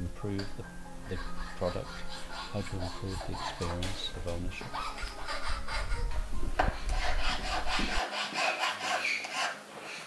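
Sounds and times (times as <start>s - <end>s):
hand file rasping: 1.1s - 10.0s.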